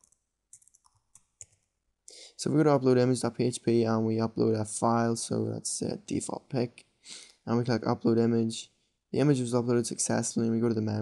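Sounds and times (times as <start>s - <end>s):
faint keyboard keystrokes: 0.0s - 1.7s.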